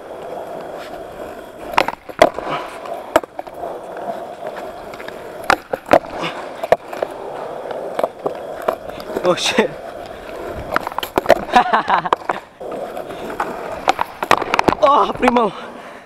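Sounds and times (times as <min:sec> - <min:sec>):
skateboard clacks: 0:00.0 - 0:15.6
skateboard wheels rolling on concrete: 0:00.0 - 0:16.0.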